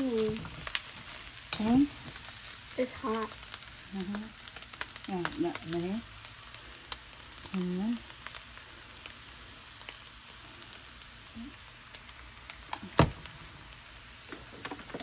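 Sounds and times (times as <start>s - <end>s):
noodles sizzling in a frying pan: 0.0s - 15.0s.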